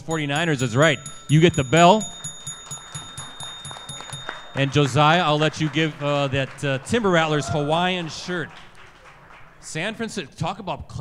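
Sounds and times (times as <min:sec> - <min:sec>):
bell rung rapidly: 0:00.0 - 0:07.8
light hand-clapping: 0:00.4 - 0:09.6.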